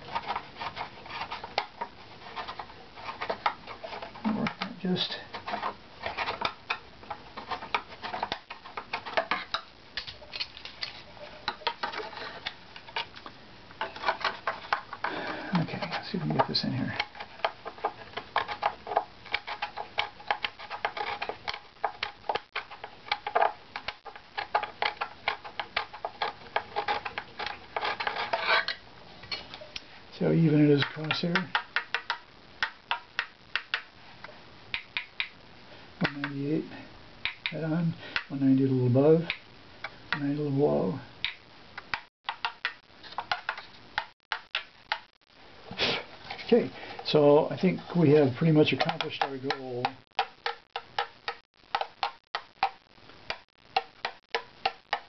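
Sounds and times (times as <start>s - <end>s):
steel scraper scraping wood: 24.5s - 28.8s.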